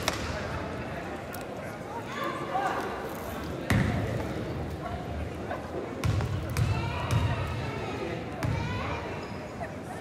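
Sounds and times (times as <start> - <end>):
crowd voices in a gym: 0.0 - 10.0.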